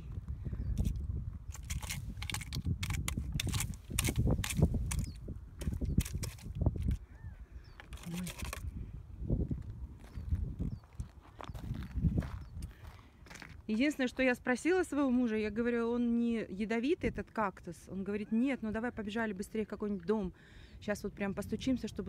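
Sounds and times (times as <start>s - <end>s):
low rumble on microphone: 0.0s - 13.0s
footsteps crunching on gravel: 9.5s - 14.1s.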